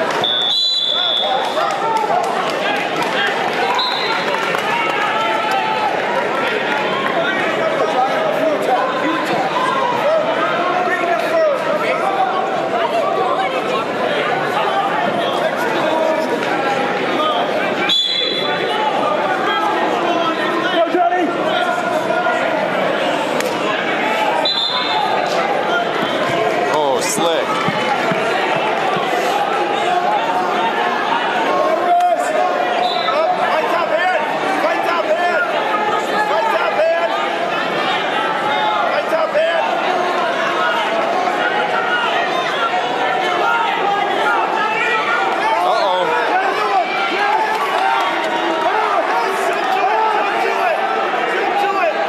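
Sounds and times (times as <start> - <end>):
crowd talking and calling out: 0.0 - 52.0.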